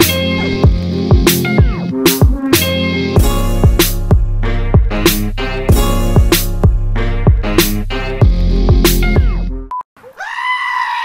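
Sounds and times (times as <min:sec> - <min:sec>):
upbeat outro music: 0:00.0 - 0:09.7
sheep bleating: 0:10.2 - 0:11.0.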